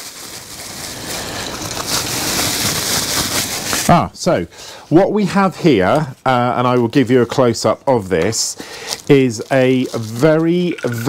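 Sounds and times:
plastic packaging rustling: 0.0s - 4.1s, 8.2s - 11.0s.

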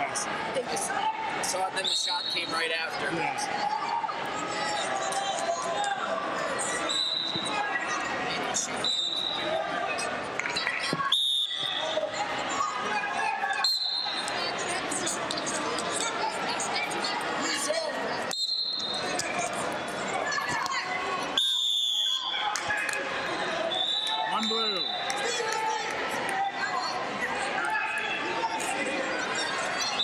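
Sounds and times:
referee's whistle: 1.8s - 2.6s, 6.7s - 7.6s, 8.7s - 9.5s, 11.0s - 12.0s, 13.6s - 14.3s, 18.3s - 19.3s, 21.4s - 22.4s, 23.7s - 25.2s
short whistles: 6.8s - 7.5s, 8.7s - 9.4s, 11.1s - 11.9s, 18.3s - 19.3s, 21.4s - 22.4s, 23.7s - 25.1s.

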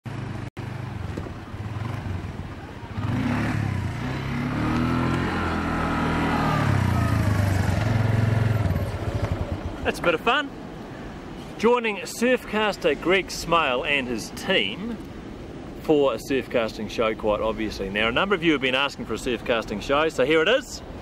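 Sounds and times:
quad bike engine running: 0.1s - 9.9s.

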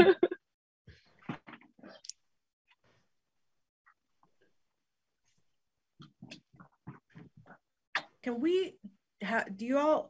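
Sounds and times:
woman laughing: 0.0s - 0.4s.

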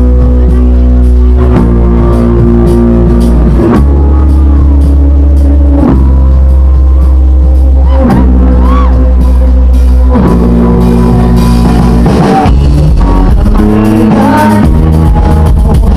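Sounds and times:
live rock band playing: 0.0s - 15.9s.

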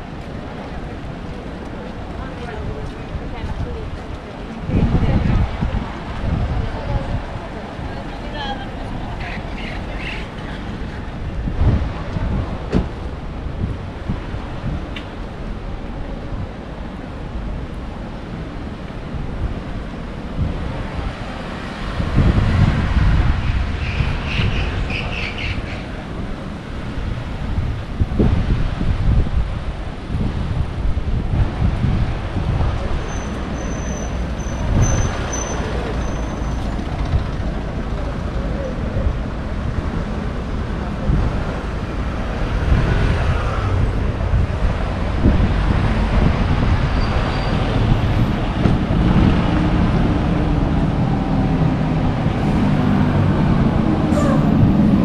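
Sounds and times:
cars driving past: 32.8s - 55.0s.

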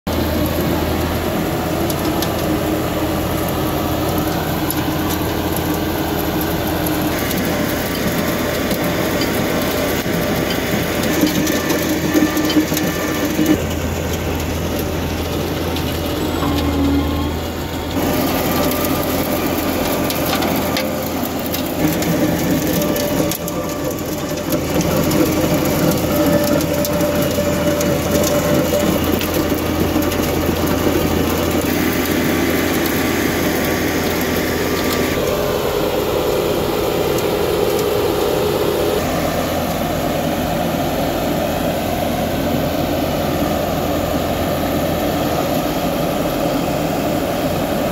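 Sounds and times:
cutting wheel grinding through soil: 0.1s - 40.8s
diesel engine under load: 0.1s - 47.9s.

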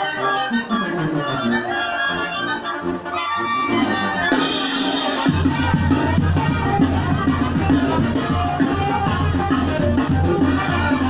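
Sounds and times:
wind band playing festive tune: 0.0s - 11.0s.

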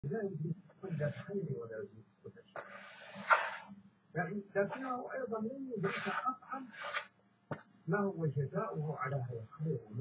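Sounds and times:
marker scratching on paper: 0.8s - 1.4s, 2.6s - 3.8s, 4.6s - 5.1s, 5.7s - 7.6s, 8.6s - 10.0s.

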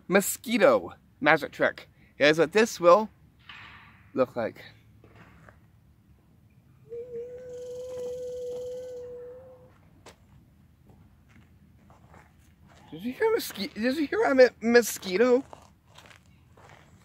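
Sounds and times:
man humming a buzz: 6.8s - 9.8s.

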